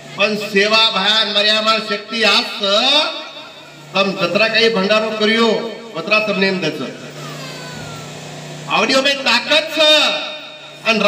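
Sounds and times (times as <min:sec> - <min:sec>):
low engine-like hum: 0:00.0 - 0:11.0
man speaking: 0:00.2 - 0:07.1, 0:08.7 - 0:11.0.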